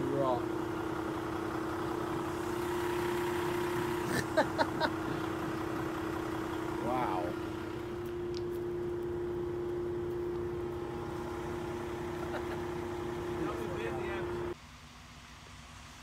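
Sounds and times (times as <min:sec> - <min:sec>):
engine whine: 0:00.0 - 0:16.0
truck engine hum: 0:00.0 - 0:16.0.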